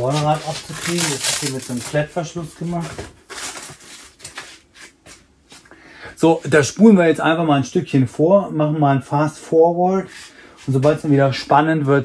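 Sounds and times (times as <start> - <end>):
packaging rustling and scraping: 0.0 - 5.2.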